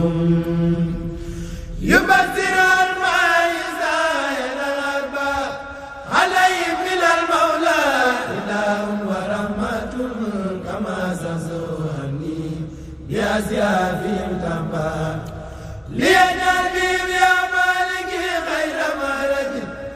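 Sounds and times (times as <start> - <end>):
person chanting religious poem: 0.0 - 19.9.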